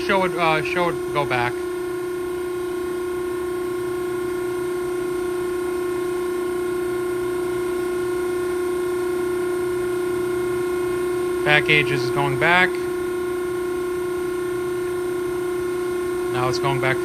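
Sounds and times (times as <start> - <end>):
hydraulic pump whine: 0.0 - 17.0.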